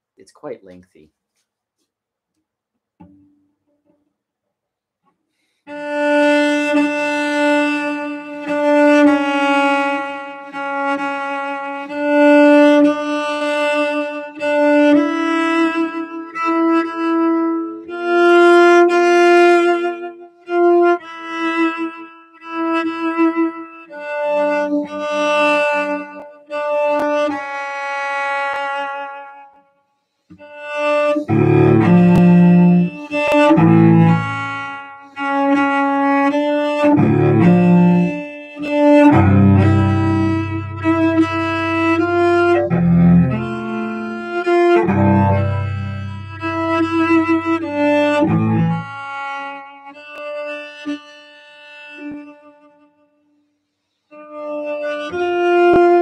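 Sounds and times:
bowed cello: 5.7 - 29.6, 30.3 - 53.1, 54.1 - 56.0.

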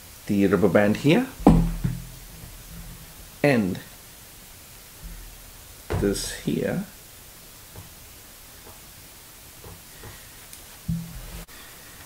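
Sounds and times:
low hiss: 0.0 - 12.0.

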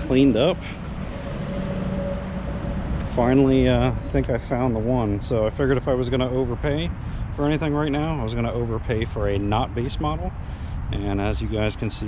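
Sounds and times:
low rumble of motor vehicles: 0.0 - 12.0.

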